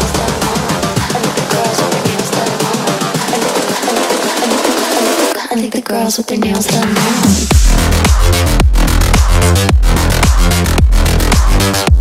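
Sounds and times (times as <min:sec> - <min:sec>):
electronic music with fast drums: 0:00.0 - 0:05.4, 0:06.4 - 0:12.0.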